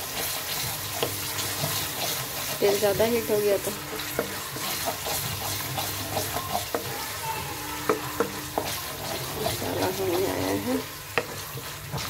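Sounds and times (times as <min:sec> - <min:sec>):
masala sizzling in a pan: 0:00.0 - 0:12.0
spatula stirring and scraping: 0:00.0 - 0:12.0
spatula clicking against pan: 0:11.1 - 0:11.5.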